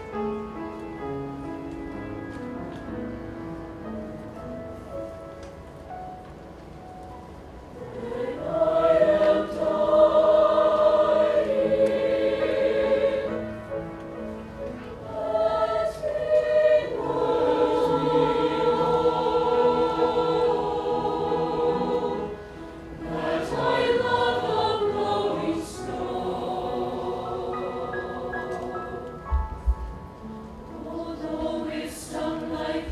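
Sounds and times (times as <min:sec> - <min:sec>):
mixed choir singing: 0:07.8 - 0:13.8, 0:14.9 - 0:29.4, 0:30.6 - 0:32.9.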